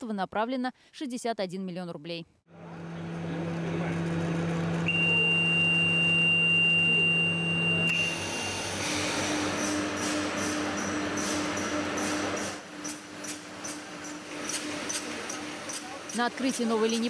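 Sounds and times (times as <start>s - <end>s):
machine hum: 2.5s - 15.6s
high warning beep: 4.9s - 8.2s.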